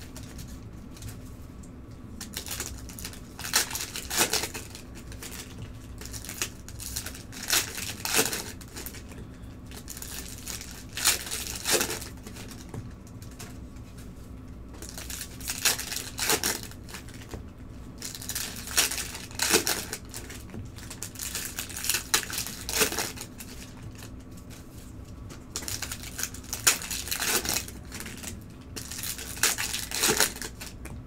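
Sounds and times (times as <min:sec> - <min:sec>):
card pack wrapper tearing: 0:02.2 - 0:09.1, 0:09.7 - 0:12.7, 0:14.8 - 0:17.3, 0:18.0 - 0:24.2, 0:25.6 - 0:30.8.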